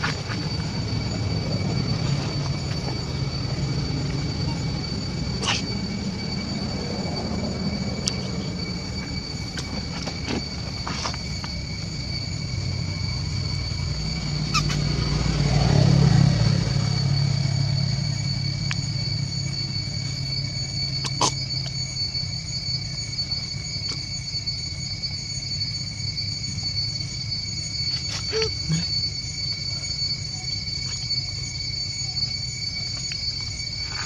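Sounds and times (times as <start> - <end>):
passing vehicle engine rumble: 0.0 - 22.1
high-pitched insect drone: 0.0 - 34.0.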